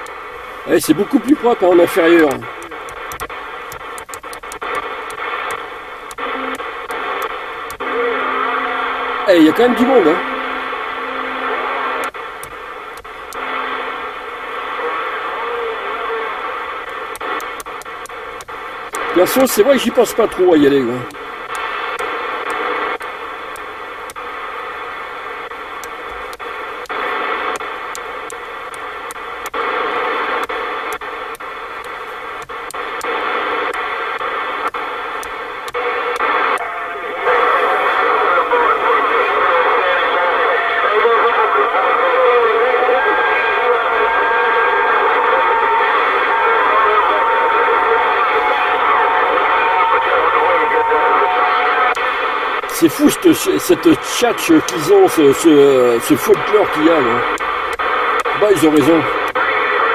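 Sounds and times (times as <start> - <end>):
distant voices over radio: 0.0 - 59.9
radio static hiss: 0.0 - 59.9
steady radio whistling tones: 0.0 - 59.9.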